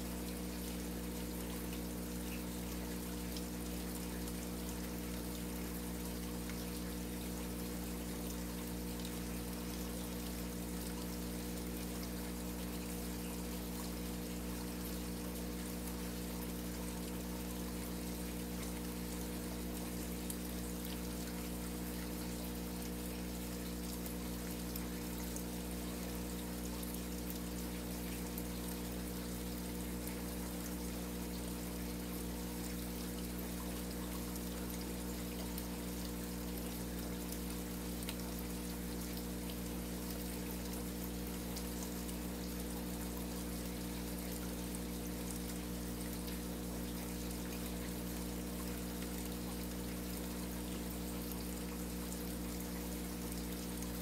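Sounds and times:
water splashing and trickling: 0:00.0 - 0:54.0.

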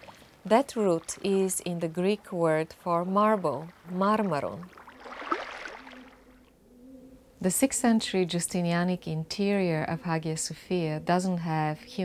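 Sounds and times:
water lapping and trickling: 0:00.0 - 0:06.6.

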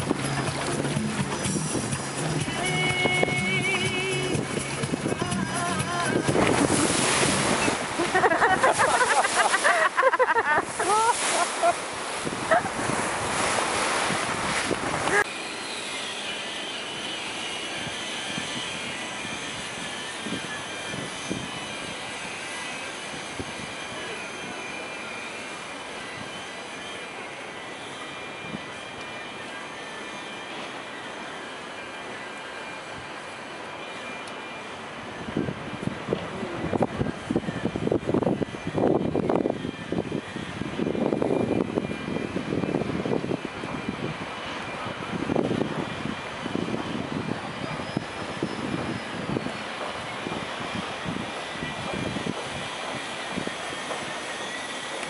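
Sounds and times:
wind on microphone: 0:00.0 - 0:09.3, 0:12.0 - 0:15.3, 0:17.8 - 0:22.4, 0:35.1 - 0:54.1
water rushing in wake: 0:00.0 - 0:16.2.

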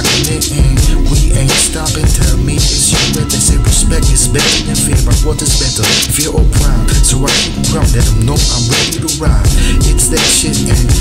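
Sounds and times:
hip hop beat with heavy bass: 0:00.0 - 0:11.0
person rapping: 0:00.0 - 0:11.0.

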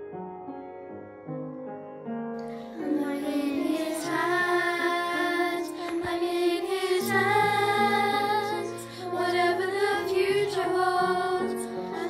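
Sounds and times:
children singing: 0:02.7 - 0:12.0.

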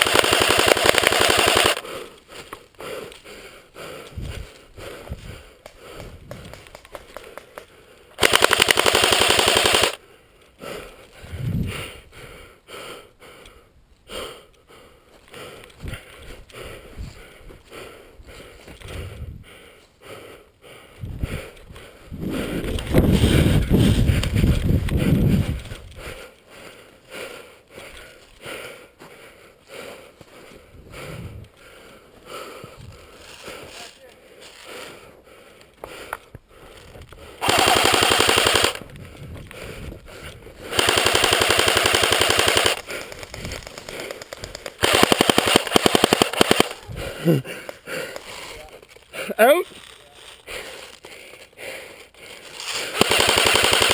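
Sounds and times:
airsoft gun firing full auto: 0:00.0 - 0:01.8, 0:08.2 - 0:10.0, 0:37.4 - 0:38.8, 0:40.7 - 0:46.9, 0:52.9 - 0:53.9.

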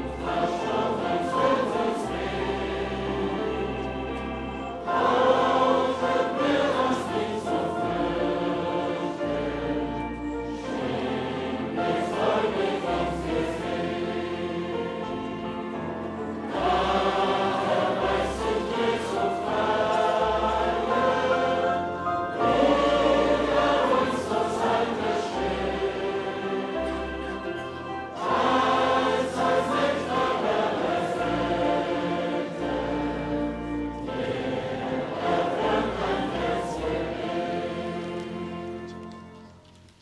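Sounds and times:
congregation singing a hymn: 0:00.0 - 0:39.9.

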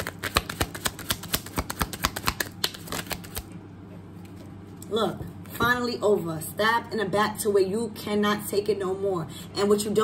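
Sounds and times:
cards being shuffled: 0:00.0 - 0:03.5.

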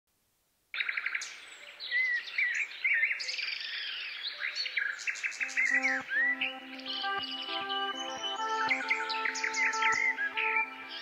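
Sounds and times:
birds singing: 0:00.8 - 0:11.0
low sustained instrument notes: 0:05.4 - 0:11.0.

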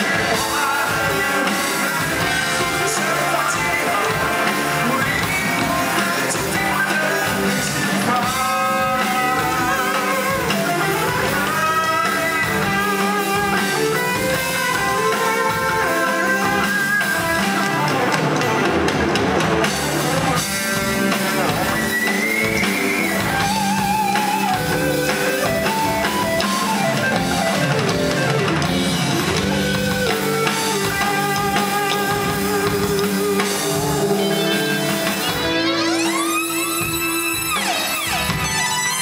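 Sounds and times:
bass guitar: 0:00.0 - 0:39.0
drum kit: 0:00.0 - 0:39.0
guitars: 0:00.0 - 0:39.0.

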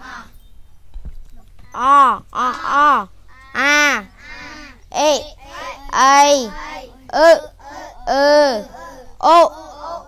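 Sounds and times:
young voices chanting vowels: 0:00.0 - 0:00.4, 0:01.7 - 0:10.0.

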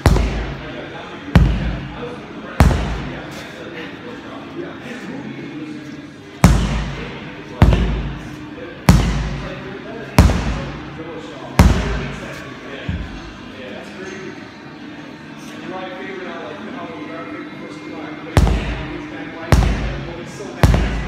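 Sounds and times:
sledgehammer striking rubber tyre: 0:02.6 - 0:03.1.

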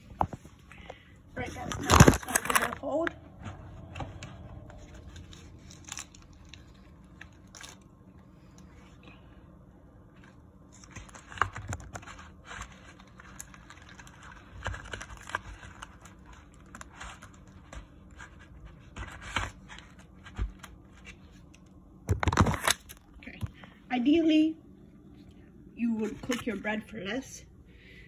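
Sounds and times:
phone being handled: 0:18.9 - 0:23.6.

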